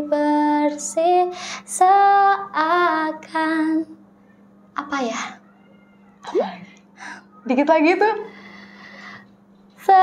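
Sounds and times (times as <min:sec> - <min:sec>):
woman speaking: 0:07.4 - 0:08.3.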